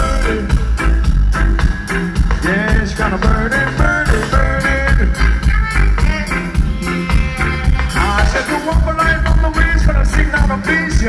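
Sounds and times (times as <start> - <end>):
live reggae band playing: 0.0 - 11.0.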